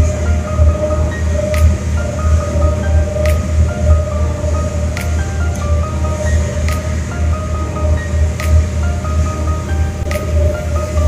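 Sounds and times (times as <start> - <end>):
ferry engine throbbing: 0.0 - 11.0
music playing: 0.0 - 11.0.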